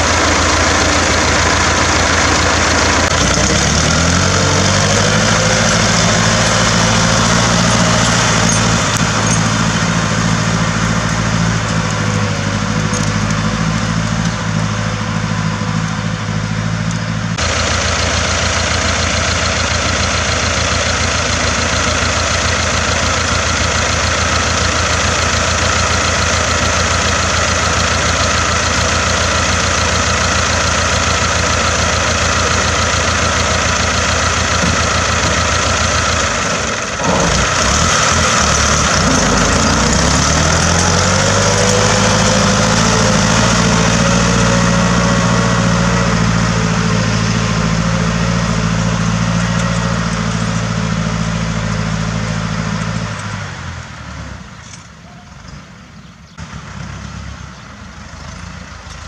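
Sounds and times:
tractor engine running under load: 0:00.0 - 0:59.0.

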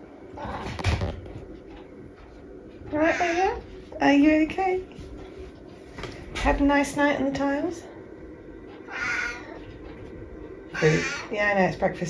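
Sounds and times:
cat meowing: 0:08.9 - 0:09.6, 0:10.8 - 0:11.3.

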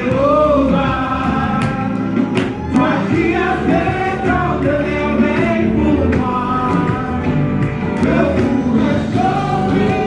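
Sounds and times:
gospel singing with instruments: 0:00.0 - 0:10.0.

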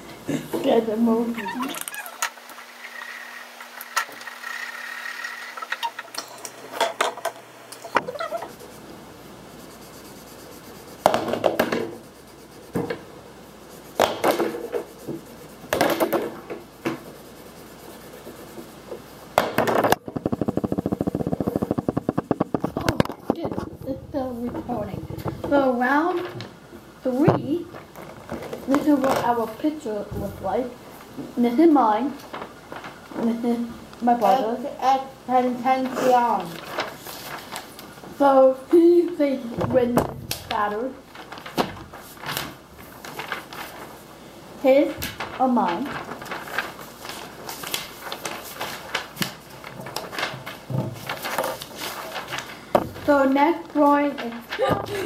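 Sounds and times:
drawing paper rustling: 0:07.9 - 0:55.0
marker scribbling on paper: 0:08.0 - 0:19.2.

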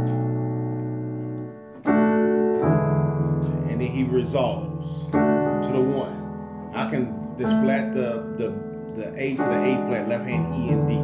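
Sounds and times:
digital piano chords: 0:00.0 - 0:11.0.

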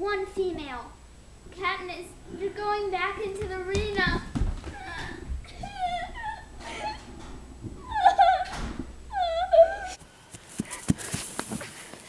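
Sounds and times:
dull thumps: 0:00.5 - 0:09.8
girl wailing and sobbing: 0:04.0 - 0:10.0.

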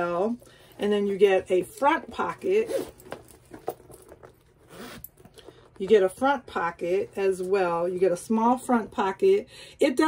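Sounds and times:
metal zipper being pulled: 0:02.4 - 0:05.5.

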